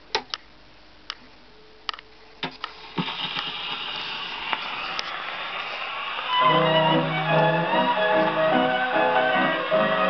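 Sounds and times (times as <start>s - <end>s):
record surface hiss and crackle: 0.0s - 10.0s
band music from record: 6.3s - 10.0s.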